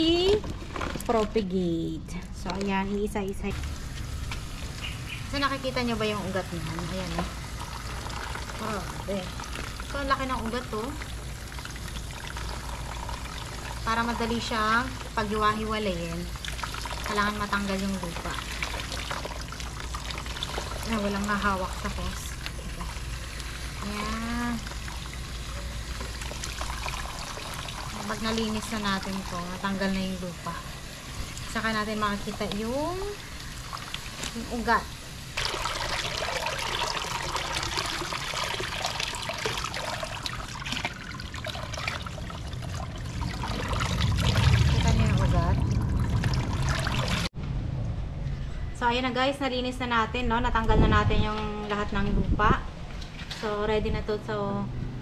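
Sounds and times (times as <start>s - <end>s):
water splashing into basin: 3.5s - 29.9s, 30.6s - 47.4s
water spraying from hose nozzle: 3.5s - 47.3s.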